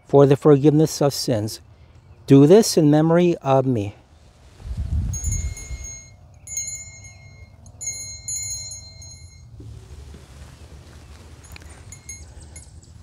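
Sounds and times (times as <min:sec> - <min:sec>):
small bell rung quickly: 0:05.1 - 0:09.5, 0:11.4 - 0:13.0.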